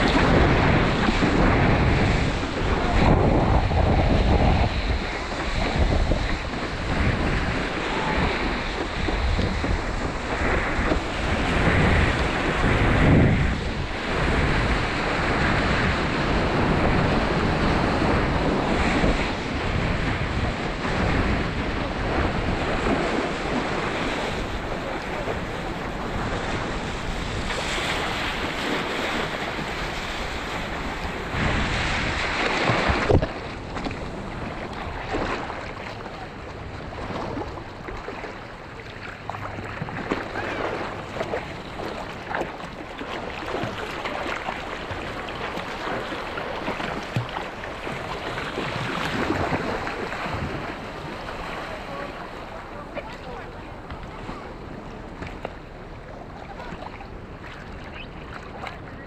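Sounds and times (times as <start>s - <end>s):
rushing water and whitewater: 0.0s - 59.0s
wind buffeting microphone: 0.0s - 59.0s.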